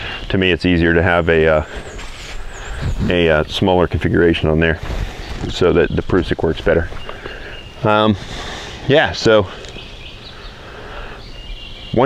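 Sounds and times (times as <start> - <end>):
woodland background hush: 0.0 - 12.0
bird trilling: 5.0 - 12.0.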